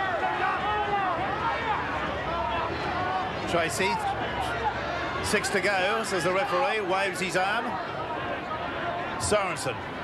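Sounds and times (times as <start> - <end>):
stadium crowd shouting: 0.0 - 10.0.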